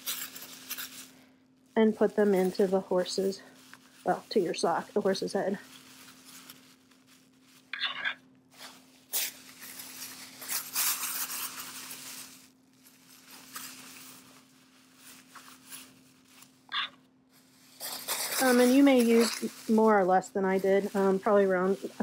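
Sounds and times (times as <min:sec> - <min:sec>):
faint steady hum: 0:00.0 - 0:22.0
plastic bags crinkling: 0:00.0 - 0:22.0.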